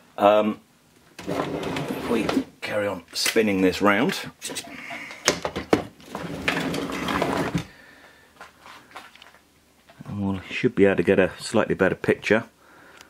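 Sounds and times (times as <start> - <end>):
knocks and clicks of handling: 5.0 - 6.8
scraping slide: 6.1 - 7.7.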